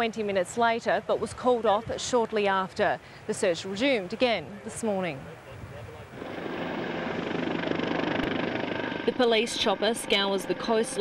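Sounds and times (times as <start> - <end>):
helicopter rotor and engine: 6.1 - 11.0.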